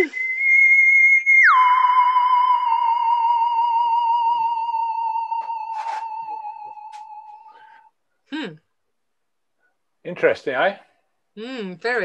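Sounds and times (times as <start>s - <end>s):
high whistle-like tone: 0.0s - 7.9s.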